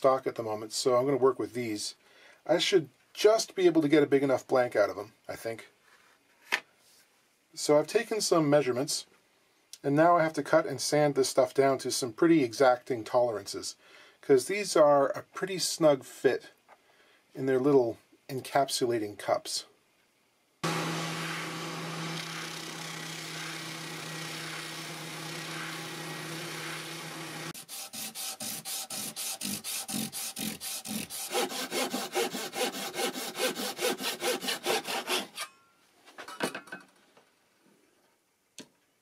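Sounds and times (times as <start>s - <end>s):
hand-sanding strokes: 20.6s - 35.4s
spindle sander humming: 20.6s - 35.4s.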